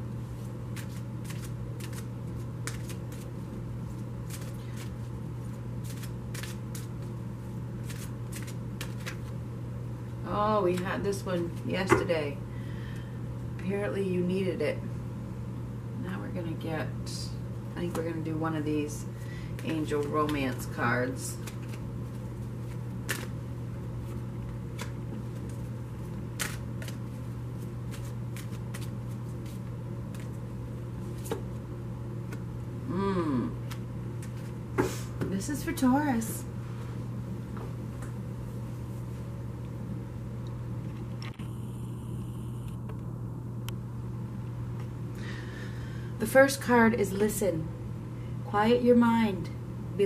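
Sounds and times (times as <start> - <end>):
steady low hum: 0.0 - 50.0
cards shuffled by hand: 0.4 - 3.3, 3.9 - 7.2, 7.8 - 9.4, 21.3 - 23.4, 24.0 - 30.4, 31.0 - 31.6, 33.6 - 34.6.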